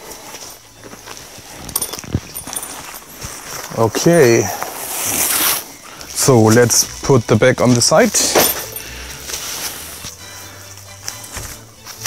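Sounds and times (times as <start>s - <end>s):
bag rustling: 0.0s - 12.0s
zipper of gig bag opening: 4.5s - 5.8s.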